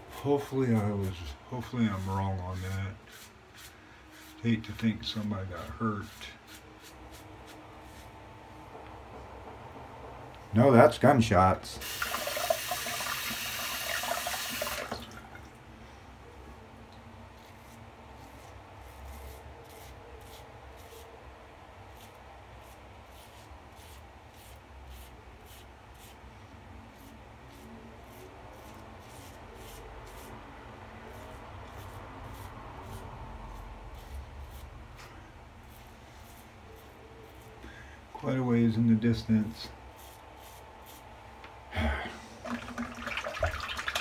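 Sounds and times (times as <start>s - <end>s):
razor scraping stubble: 31.1s - 34.7s.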